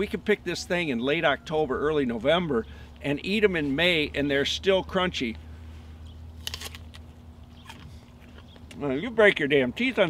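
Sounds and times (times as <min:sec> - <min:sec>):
chewing crunches: 0:06.0 - 0:08.8
apple crunching: 0:06.0 - 0:09.0.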